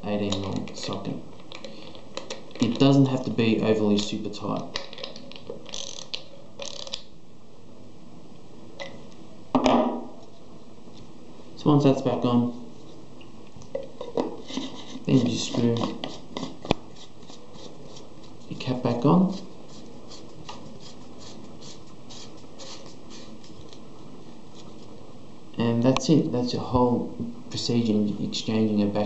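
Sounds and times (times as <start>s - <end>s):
socket ratchet clicking: 5.7s - 7.0s.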